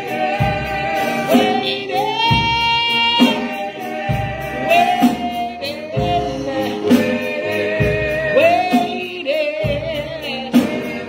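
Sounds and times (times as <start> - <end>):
gospel singing: 0.0 - 11.0.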